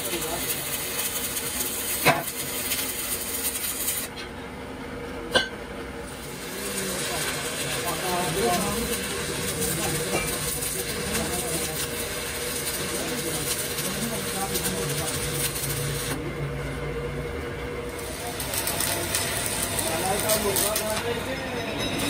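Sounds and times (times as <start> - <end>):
welding arc crackling: 0.0 - 4.2, 6.0 - 16.3, 17.6 - 22.0
constant hum: 3.4 - 22.0.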